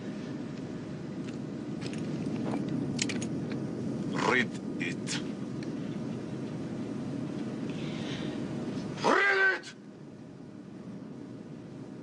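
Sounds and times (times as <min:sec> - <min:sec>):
low steady rumble: 0:00.0 - 0:12.0
person crying out high-pitched: 0:09.0 - 0:09.7.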